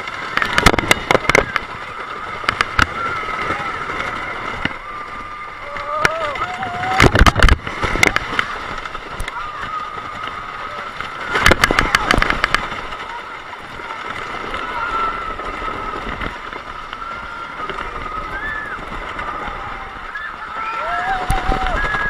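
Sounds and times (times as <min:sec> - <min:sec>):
roller coaster wind and wheel noise: 0:00.0 - 0:22.0
riders yelling: 0:02.8 - 0:12.4, 0:14.0 - 0:22.0.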